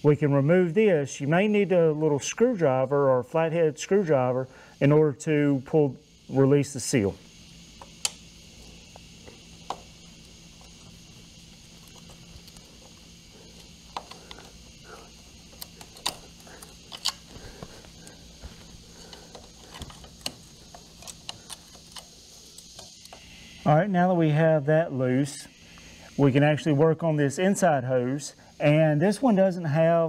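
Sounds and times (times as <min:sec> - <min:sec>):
faint steady hum: 0:00.0 - 0:30.0.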